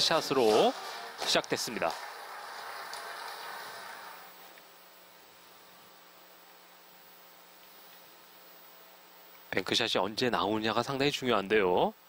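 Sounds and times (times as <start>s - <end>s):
billiards hall background noise: 0.0s - 6.4s.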